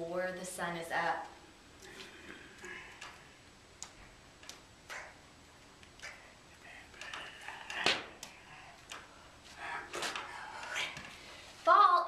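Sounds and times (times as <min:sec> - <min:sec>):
soft breathy hiss: 0:06.0 - 0:11.7.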